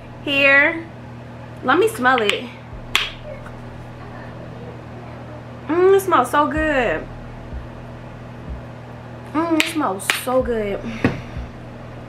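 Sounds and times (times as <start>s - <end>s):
low electrical hum: 0.0s - 12.0s
faint low thuds: 2.7s - 4.9s, 6.5s - 9.3s, 10.4s - 12.0s.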